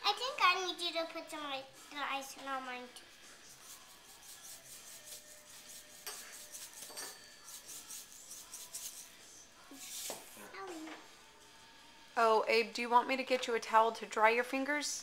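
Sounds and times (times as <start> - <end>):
knife scraping icing on cookie: 3.4 - 10.4.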